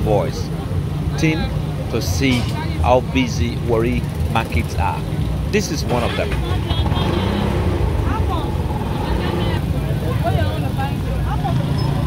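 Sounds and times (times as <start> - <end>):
indistinct chatter: 0.0 - 12.0
steady low rumble: 0.7 - 10.2.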